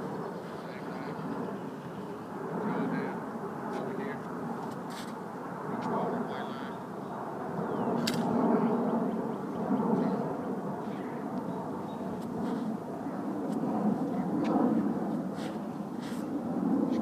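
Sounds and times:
sharp click: 0:08.0 - 0:08.3.

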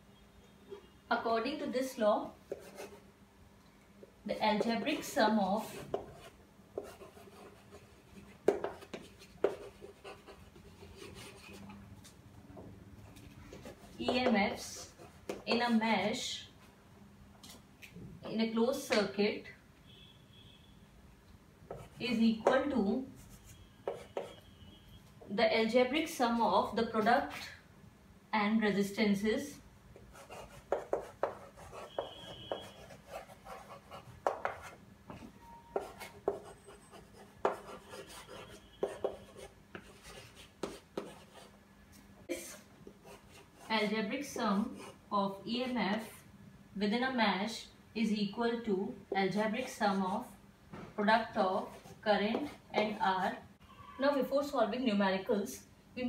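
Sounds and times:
chalk scratching on chalkboard: 0:02.5 - 0:03.0, 0:04.6 - 0:11.7, 0:21.7 - 0:24.5, 0:30.1 - 0:34.8, 0:35.8 - 0:41.5, 0:43.0 - 0:45.0
chalk tapping on board: 0:05.8 - 0:07.7, 0:08.4 - 0:10.3, 0:23.8 - 0:24.4, 0:30.1 - 0:34.8, 0:35.8 - 0:41.4, 0:52.3 - 0:53.0.

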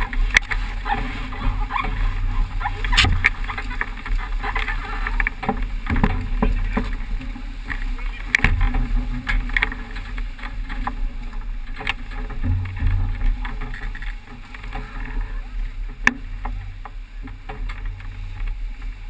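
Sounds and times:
water rushing along boat hull: 0:00.0 - 0:19.0.

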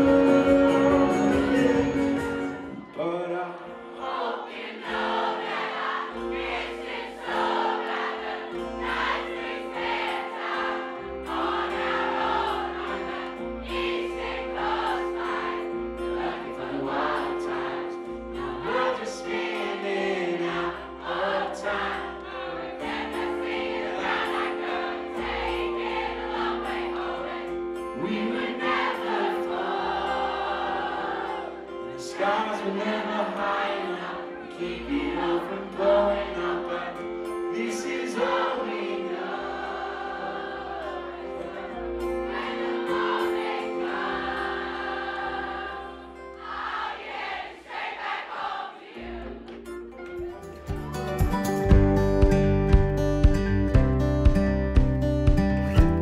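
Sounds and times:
electric guitar: 0:00.0 - 0:02.9, 0:49.5 - 0:56.0
crowd singing along: 0:00.0 - 0:50.4
strummed acoustic guitar: 0:49.0 - 0:56.0.

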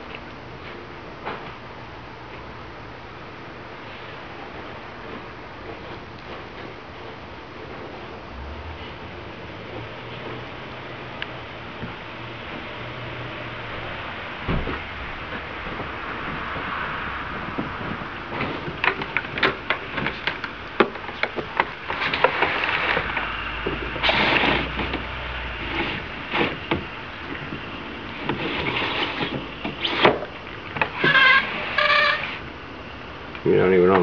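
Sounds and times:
truck rumbling past: 0:07.9 - 0:20.8
short squeaks: 0:28.4 - 0:32.5.

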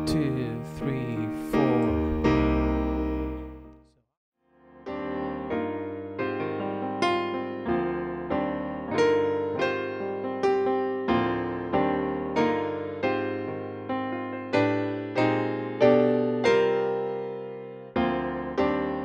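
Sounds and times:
piano music: 0:00.0 - 0:03.9, 0:04.6 - 0:19.0.

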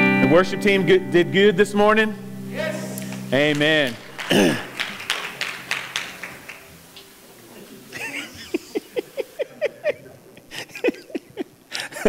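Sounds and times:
man clearing throat: 0:04.2 - 0:05.0.

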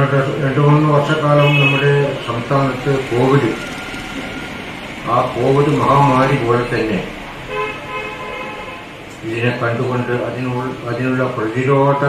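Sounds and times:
vehicle horn: 0:01.3 - 0:02.4, 0:07.4 - 0:09.0.

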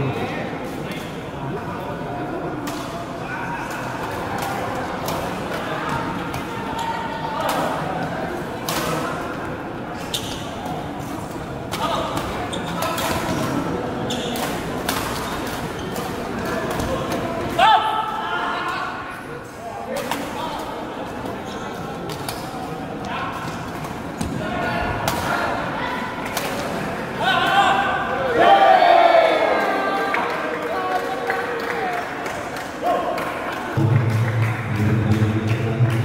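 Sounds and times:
shouts and voices echoing: 0:17.5 - 0:19.1, 0:27.2 - 0:36.0.

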